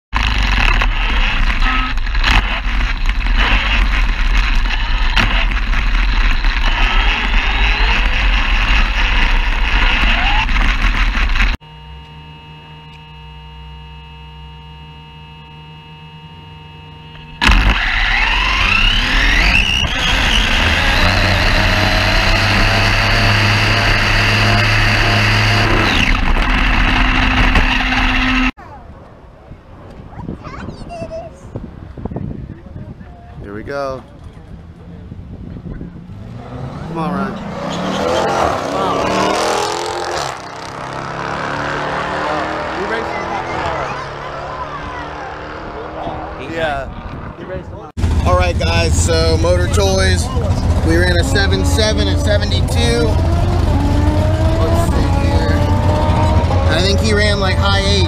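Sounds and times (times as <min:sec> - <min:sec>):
motor whine climbing in pitch: 0:00.2 - 0:28.5, 0:48.2 - 0:58.0
steady whining tones: 0:00.2 - 0:28.6, 0:36.9 - 0:58.0
loud rushing and rumbling: 0:17.2 - 0:28.6, 0:34.5 - 0:58.0.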